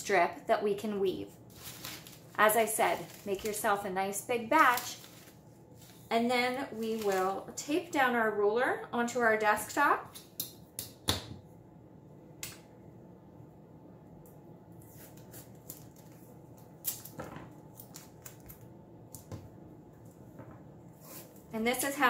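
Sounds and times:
tape peeled and torn off roll: 15.0s - 18.7s.

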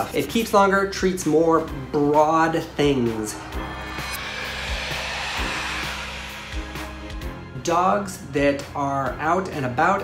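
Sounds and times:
hiss transition effect: 2.8s - 7.8s.

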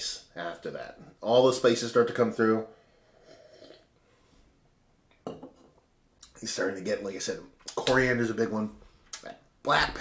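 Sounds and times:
sip from a glass: 3.2s - 3.9s.

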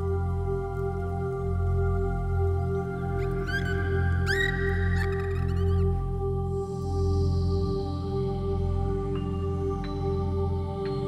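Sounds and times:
ambient music of sustained tones: 0.0s - 11.0s.

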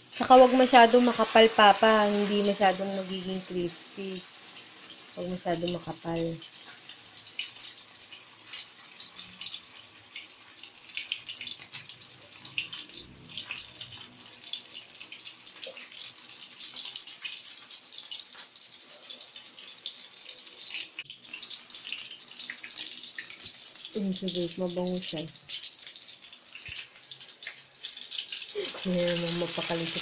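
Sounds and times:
food sizzling in hot oil: 0.0s - 30.0s.

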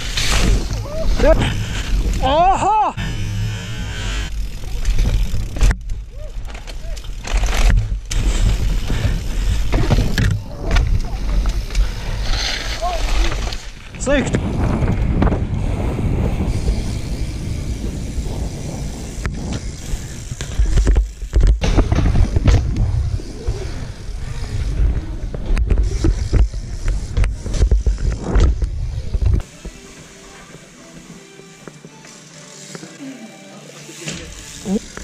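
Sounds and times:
wind and tyre rumble: 3.0s - 29.4s
bike knocks and landings: 4.7s - 11.8s, 20.3s - 29.4s
music: 29.4s - 35.0s.

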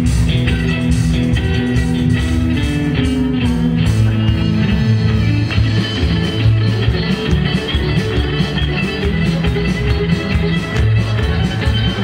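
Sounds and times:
bass guitar: 0.0s - 12.0s
drums: 0.0s - 12.0s
fiddle playing lead line: 0.0s - 12.0s.

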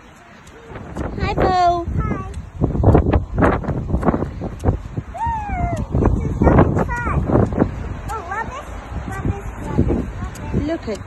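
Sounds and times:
scooter wheels rolling on wet path: 0.0s - 11.0s
wind on microphone: 0.0s - 11.0s.

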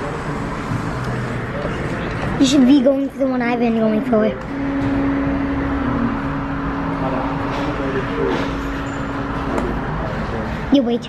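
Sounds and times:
arcade noise: 0.0s - 11.0s
motor humming: 3.8s - 10.7s.

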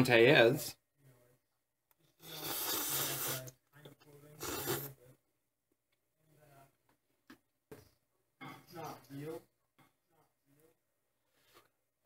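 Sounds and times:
person slurping noodles: 2.2s - 3.5s, 4.4s - 5.0s.

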